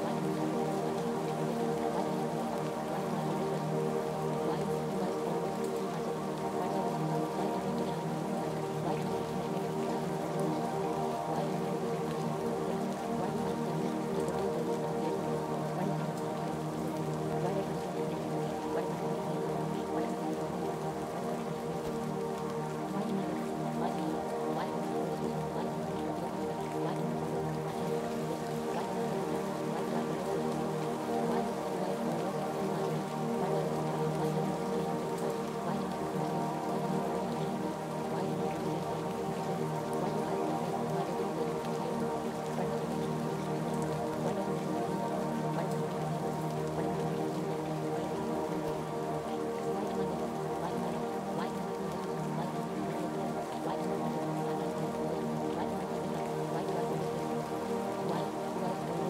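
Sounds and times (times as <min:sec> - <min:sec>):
rain: 0:00.0 - 0:59.0
soft ambient music: 0:00.0 - 0:59.0.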